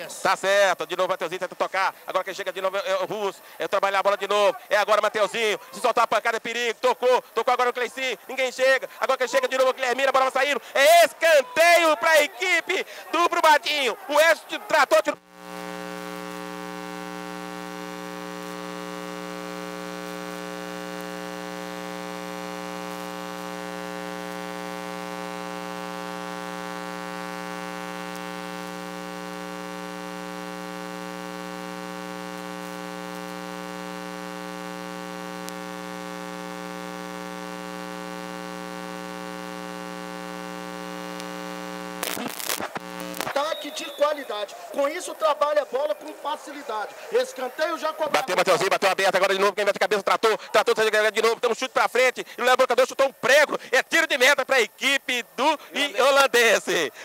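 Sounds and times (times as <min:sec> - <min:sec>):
electrical mains hum: 0:15.4 - 0:43.3.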